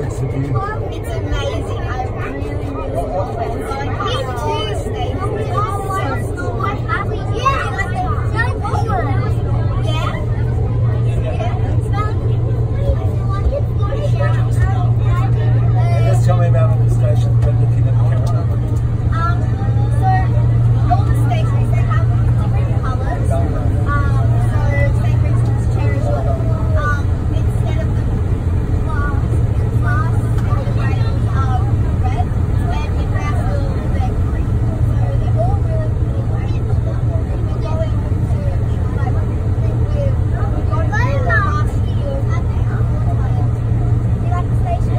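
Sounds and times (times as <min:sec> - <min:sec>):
passenger chatter: 0:00.0 - 0:44.9
train running in a tunnel: 0:00.0 - 0:44.9.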